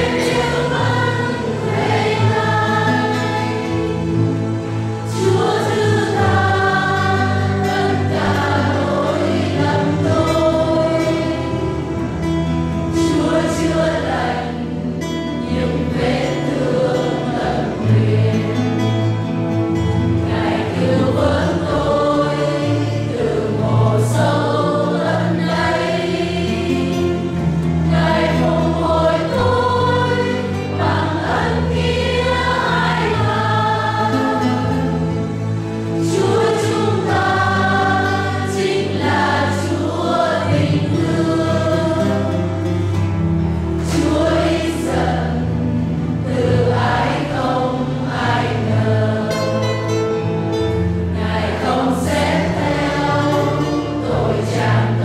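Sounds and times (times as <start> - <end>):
church choir singing a hymn: 0.0 - 55.0
instrumental accompaniment: 0.0 - 55.0.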